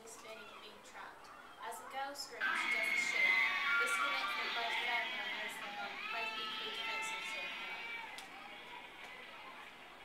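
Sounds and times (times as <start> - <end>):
woman screaming: 2.4 - 8.2.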